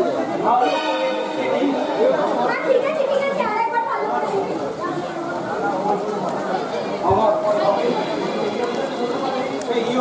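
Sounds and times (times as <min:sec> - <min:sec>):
background chatter: 0:00.0 - 0:10.0
people talking: 0:00.0 - 0:10.0.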